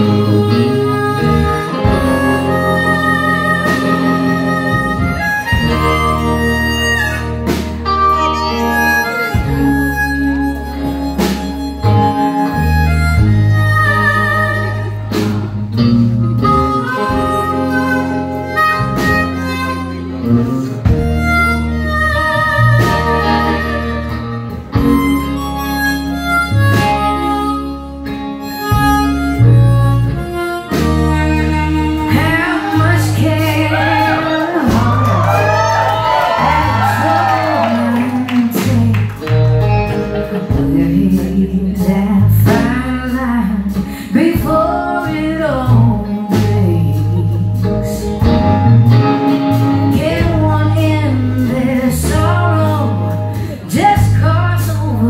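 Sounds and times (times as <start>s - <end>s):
harmonica solo: 0.0s - 38.4s, 44.8s - 55.0s
bass guitar: 0.0s - 55.0s
drums: 0.0s - 55.0s
electric guitar: 0.0s - 55.0s.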